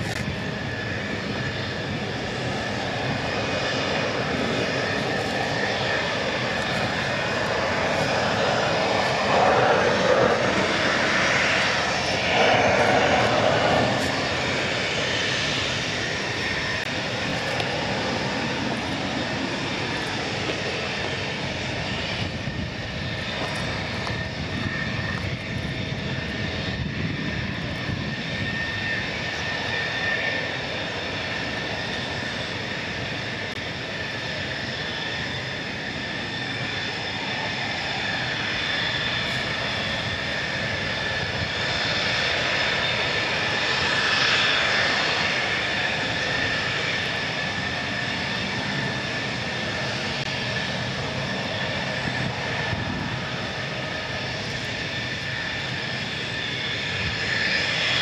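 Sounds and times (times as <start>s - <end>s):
jet engines whining: 0.0s - 58.0s.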